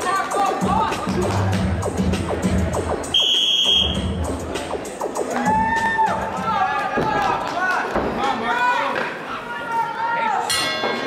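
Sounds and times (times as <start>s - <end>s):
background music: 0.0s - 8.4s.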